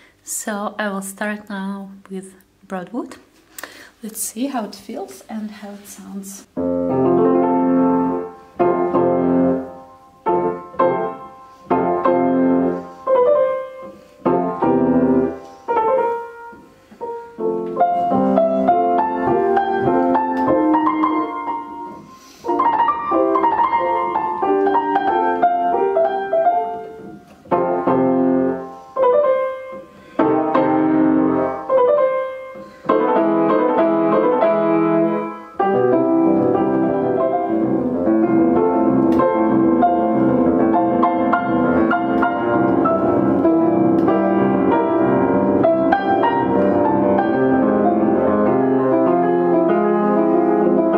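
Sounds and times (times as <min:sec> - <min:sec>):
fortepiano playing: 0:06.4 - 0:50.9.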